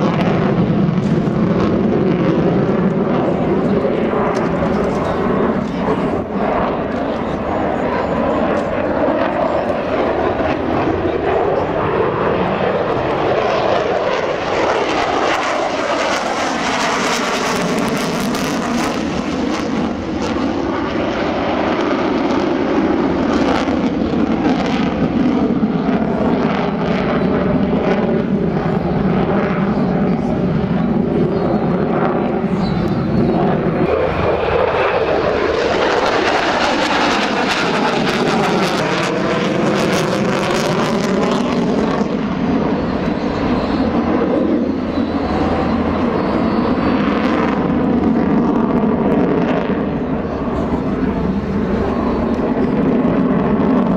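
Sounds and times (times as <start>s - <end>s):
fighter jet engines roaring: 0.0s - 53.9s.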